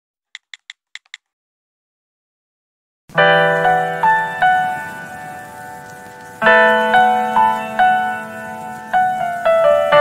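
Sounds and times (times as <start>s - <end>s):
keyboard typing clicks: 0.3s - 1.3s.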